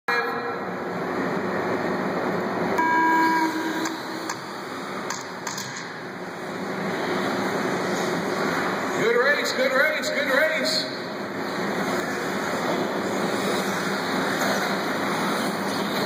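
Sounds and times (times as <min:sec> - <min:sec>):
steady electronic tone: 0:02.7 - 0:05.0.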